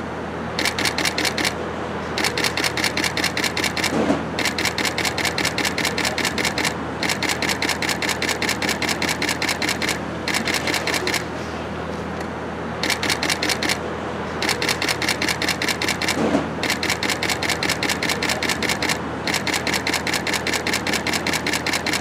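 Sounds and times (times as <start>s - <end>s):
steady low hum: 0.0s - 22.0s
camera shutters firing: 0.6s - 1.6s, 2.2s - 11.3s, 12.8s - 13.8s, 14.4s - 22.0s.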